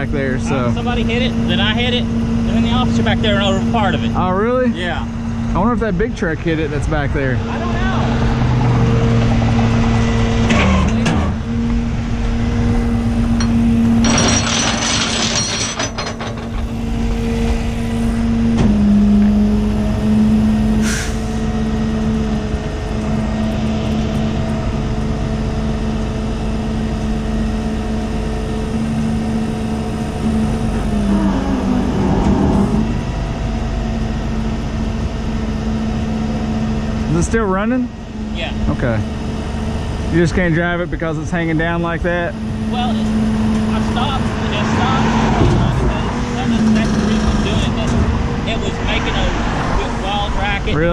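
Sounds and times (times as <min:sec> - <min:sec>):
hydraulics working: 0:00.0 - 0:50.9
truck engine droning: 0:00.0 - 0:50.9.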